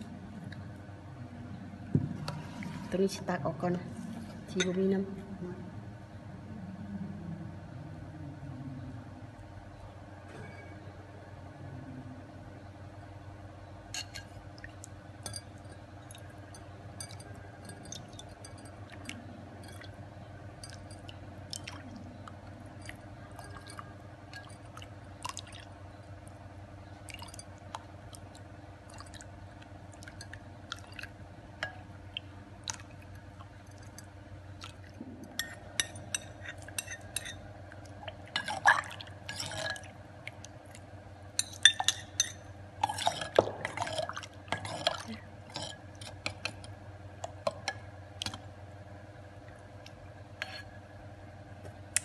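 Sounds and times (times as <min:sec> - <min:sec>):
low background hum: 0:00.0 - 0:52.0
liquid sloshing: 0:20.6 - 0:25.8, 0:27.0 - 0:46.7.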